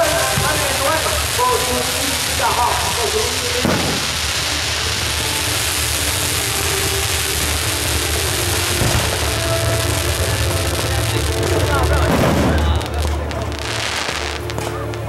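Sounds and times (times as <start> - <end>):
fireworks fountain hissing: 0.0 - 15.0.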